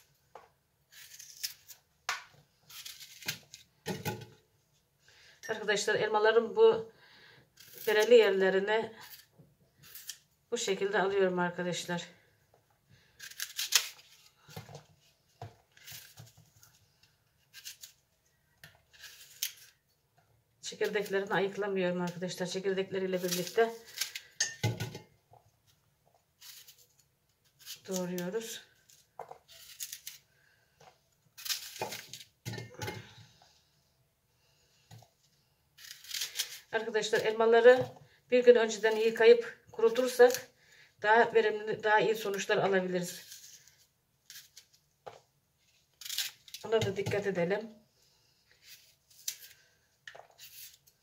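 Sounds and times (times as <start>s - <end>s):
knife cutting crisp apples: 0.9s - 3.7s, 17.4s - 18.0s, 35.8s - 37.6s
knife cutting apple: 0.9s - 4.4s, 7.6s - 8.4s, 9.0s - 10.3s, 13.2s - 14.7s, 17.4s - 18.0s, 18.6s - 19.8s, 26.4s - 30.2s, 31.4s - 33.2s, 35.8s - 37.9s, 45.9s - 47.3s.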